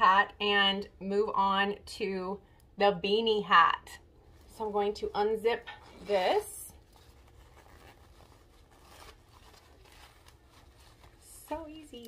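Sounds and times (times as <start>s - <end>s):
fabric rustling: 4.2s - 12.0s.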